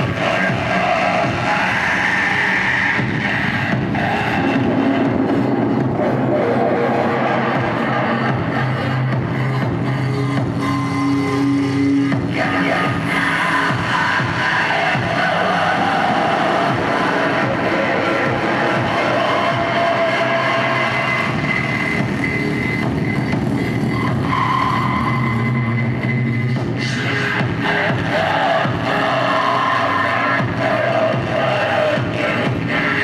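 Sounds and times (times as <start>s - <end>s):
distorted electronic noise: 0.0s - 33.0s.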